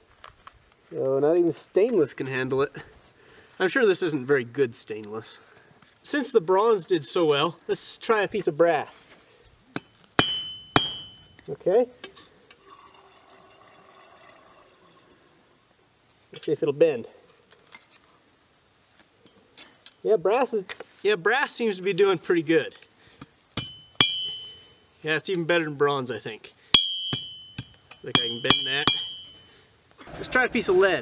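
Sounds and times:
hammer striking metal rod: 9.8 - 11.5, 23.6 - 24.8, 26.8 - 29.5
bright metallic ring: 9.8 - 11.6, 23.6 - 25.0, 26.7 - 29.7.

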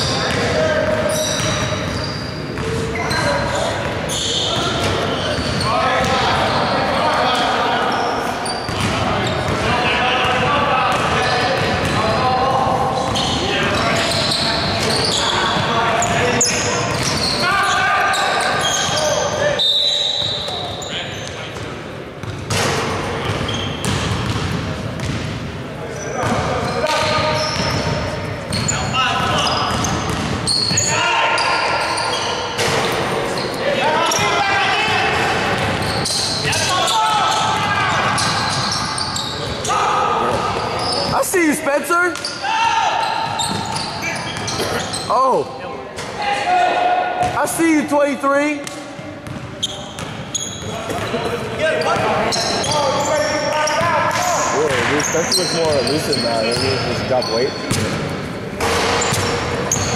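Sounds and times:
sneaker squeaks: 0.0 - 46.2, 48.4 - 59.9
ball bouncing on hardwood court: 0.2 - 2.0, 16.9 - 17.2, 22.2 - 25.4, 29.2 - 30.4, 43.2 - 44.8, 48.6 - 50.2, 57.6 - 59.9.

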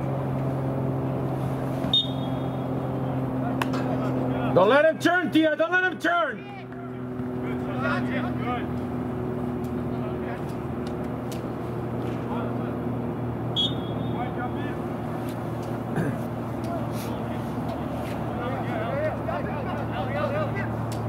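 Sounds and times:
steady low hum: 0.0 - 21.0
referee's whistle blast: 1.9 - 2.6, 13.6 - 14.2
distant shouts of players: 13.5 - 14.9, 15.9 - 20.9.

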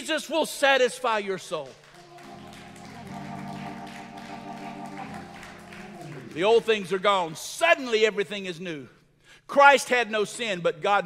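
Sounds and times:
organ chords: 2.0 - 7.3.

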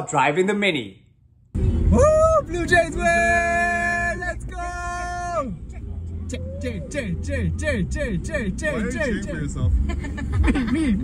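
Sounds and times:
car cabin road rumble: 1.2 - 11.0
group cheering: 1.9 - 5.6.

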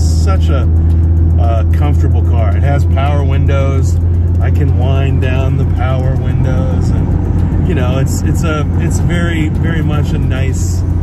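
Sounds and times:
man talking: 0.0 - 10.9
car engine drone: 0.0 - 11.0.

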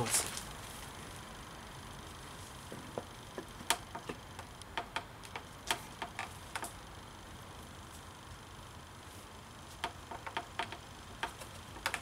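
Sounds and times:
propeller clicking onto shaft: 3.0 - 6.8, 9.8 - 12.0.

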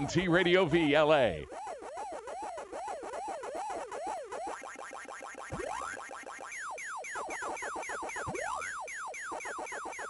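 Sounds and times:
electronic blips: 2.9 - 10.0.

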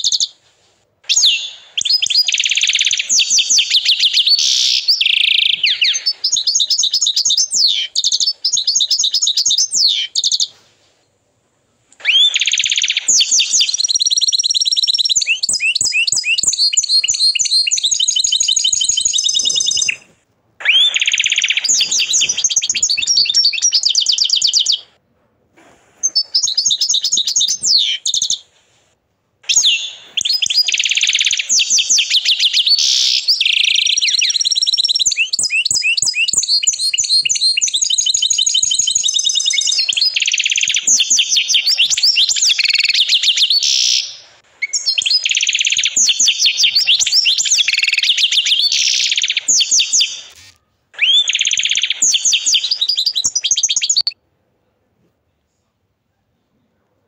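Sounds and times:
canary singing trills: 0.0 - 0.4, 1.0 - 10.6, 12.0 - 25.0, 26.0 - 28.6, 29.4 - 54.2.

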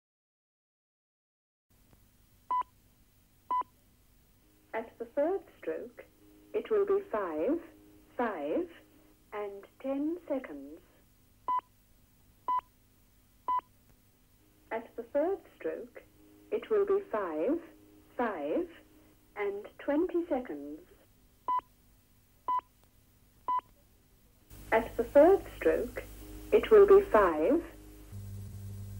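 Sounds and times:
faint steady line hum: 1.8 - 22.0, 23.5 - 28.9.

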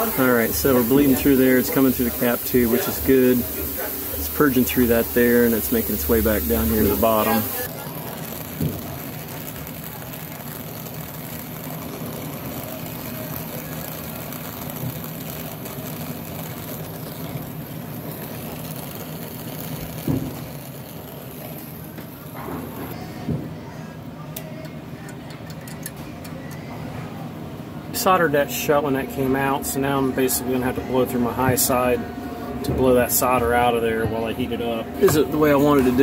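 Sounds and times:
brazing torch flame hissing: 0.0 - 23.0, 29.2 - 36.0.

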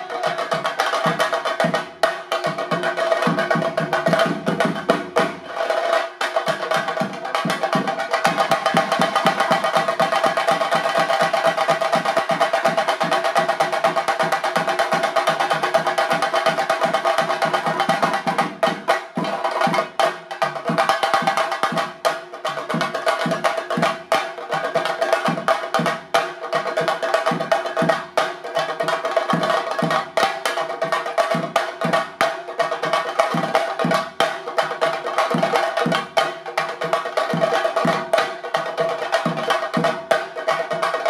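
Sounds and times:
drums beaten with sticks: 0.0 - 41.0.

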